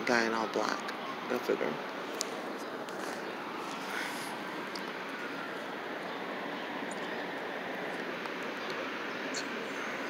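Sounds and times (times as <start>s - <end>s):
outdoor rushing hiss: 1.8s - 10.0s.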